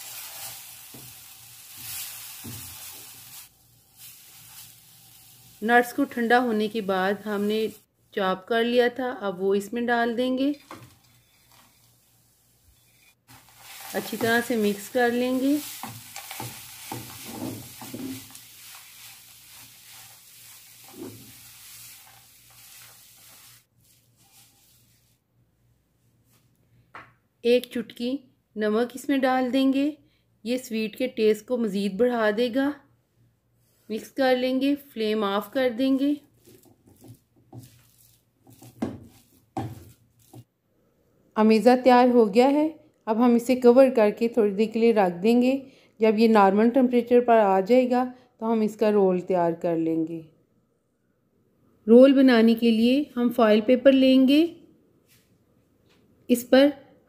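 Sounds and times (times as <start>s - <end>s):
spatula scraping sizzling pan: 0.0s - 7.9s, 10.5s - 25.1s, 36.4s - 40.5s.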